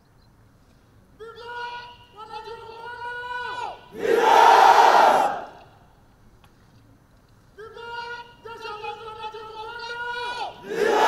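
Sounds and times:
man shouting a command: 1.2 - 5.6, 7.6 - 11.0
crowd shouting in unison: 3.9 - 5.7, 10.5 - 11.0.

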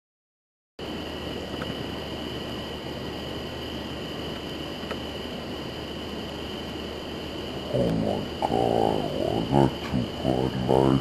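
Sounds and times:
high-pitched whine: 0.8 - 11.0
low hum: 0.8 - 11.0
steady hiss: 0.8 - 11.0.

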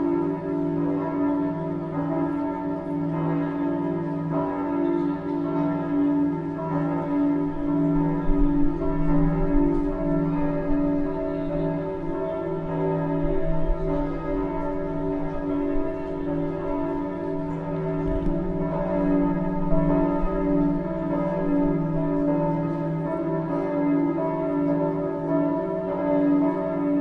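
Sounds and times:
bells ringing: 0.0 - 27.0.

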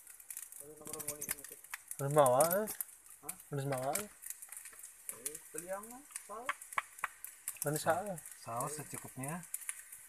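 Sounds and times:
frying in a wok: 0.0 - 10.0.

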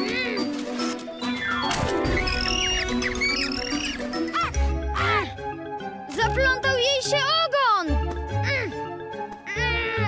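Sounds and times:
cartoon background music: 0.0 - 10.0
high squeaky chirps: 0.8 - 4.6.

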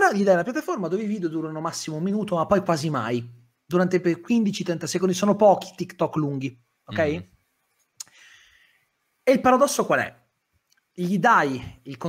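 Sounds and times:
soft hiss: 0.0 - 12.0.

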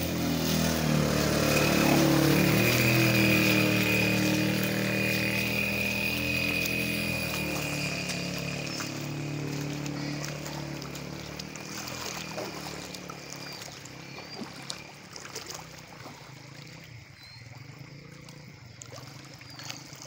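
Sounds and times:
small engine running with high whine: 0.0 - 20.0.

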